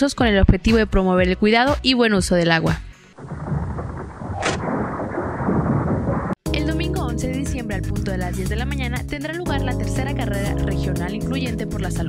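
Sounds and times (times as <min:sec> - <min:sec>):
steady rumbling noise: 0:03.2 - 0:07.2
music with steady beat: 0:06.5 - 0:12.0.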